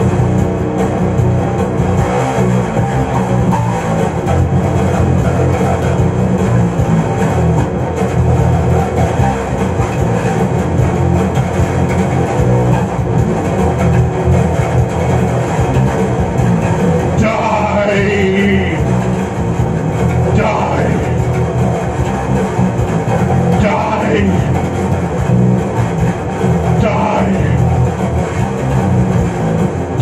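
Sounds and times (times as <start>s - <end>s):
electric bass guitar: 0.0s - 30.0s
instrumental rock music: 0.0s - 30.0s.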